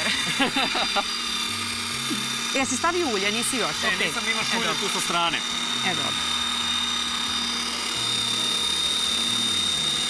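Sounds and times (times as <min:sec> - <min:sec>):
electric chopper motor whining: 0:00.0 - 0:10.0.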